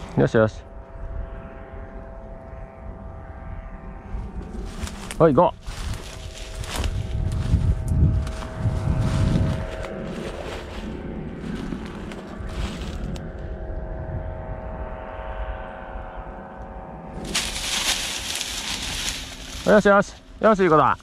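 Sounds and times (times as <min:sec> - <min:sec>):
distant engine drone: 0:00.0 - 0:21.0
low buffeting: 0:00.0 - 0:21.0
footsteps through dry grass: 0:04.2 - 0:13.4, 0:17.2 - 0:21.0
loud rustling hiss: 0:17.2 - 0:20.1.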